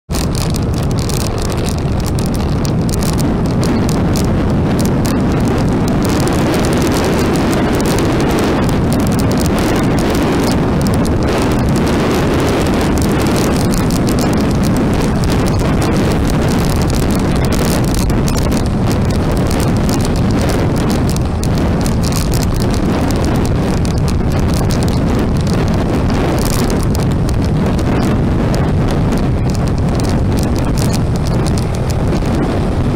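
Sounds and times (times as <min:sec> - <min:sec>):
motorbike engine and road noise: 0:00.1 - 0:32.9
wind on microphone: 0:00.1 - 0:32.9.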